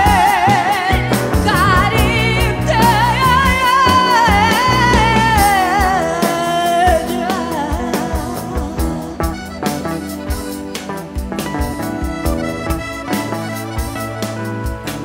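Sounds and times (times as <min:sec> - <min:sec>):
woman singing with vibrato: 0:00.0 - 0:09.4
band playing: 0:00.0 - 0:15.0.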